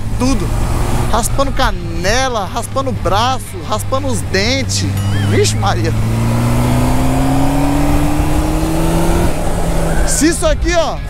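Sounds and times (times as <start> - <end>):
motorcycle engine accelerating: 0.0 - 10.6.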